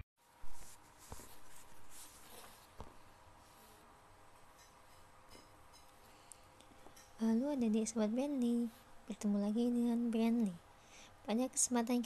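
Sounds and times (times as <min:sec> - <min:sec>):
low room hiss: 0:00.2 - 0:12.0
faint scratching and handling noise: 0:00.3 - 0:04.0.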